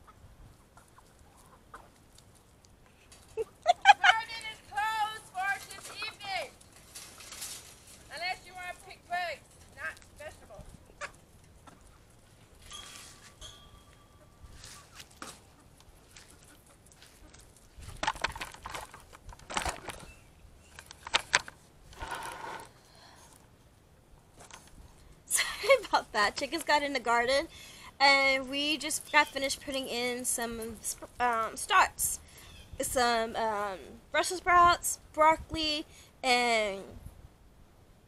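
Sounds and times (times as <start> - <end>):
chickens squawking and clucking: 10.8 - 12.3.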